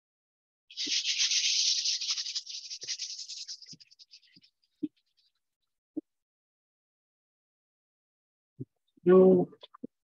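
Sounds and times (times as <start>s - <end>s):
toothbrush bristles spattering paint: 0.7s - 4.5s.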